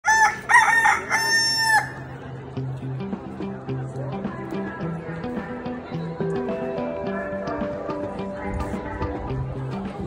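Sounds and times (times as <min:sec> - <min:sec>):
rooster crowing: 0:00.0 - 0:02.0.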